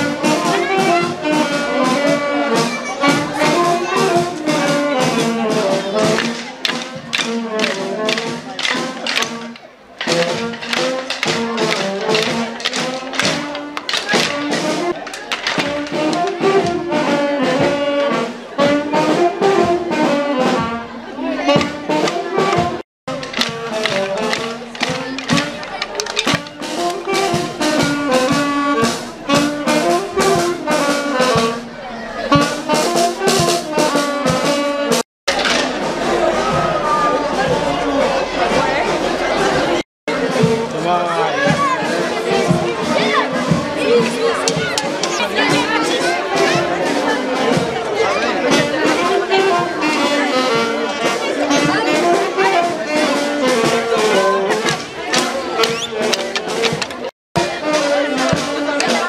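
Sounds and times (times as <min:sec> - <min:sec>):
brass band playing: 0:00.0 - 0:59.0.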